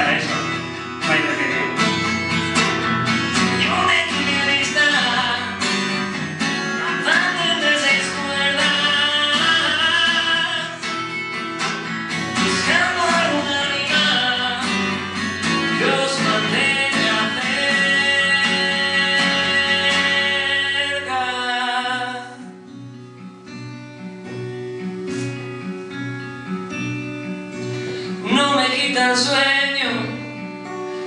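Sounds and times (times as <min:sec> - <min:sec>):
man singing: 0:00.0 - 0:01.9, 0:03.4 - 0:11.2, 0:12.1 - 0:22.5, 0:28.0 - 0:30.4
acoustic guitar strumming: 0:00.0 - 0:31.0.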